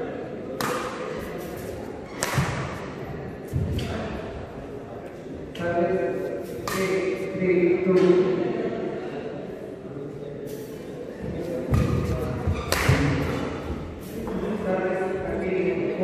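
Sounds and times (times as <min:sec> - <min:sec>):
rackets hitting shuttlecock: 0:00.5 - 0:04.0, 0:06.6 - 0:07.3, 0:11.7 - 0:13.7.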